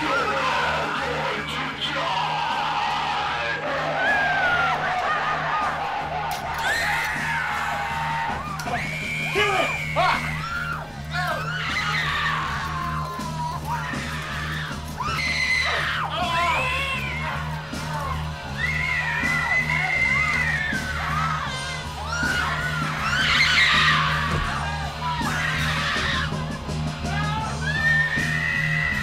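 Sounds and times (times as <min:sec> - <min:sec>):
people screaming: 0:00.0 - 0:29.0.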